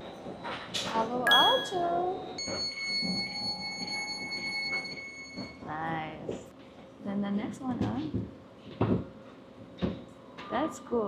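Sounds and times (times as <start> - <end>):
train door signal tones: 1.3 - 5.6.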